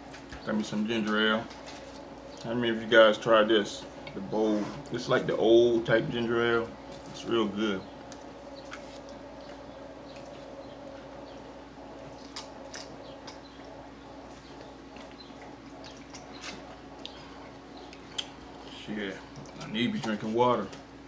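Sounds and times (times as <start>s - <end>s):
low hum: 0.0s - 21.0s.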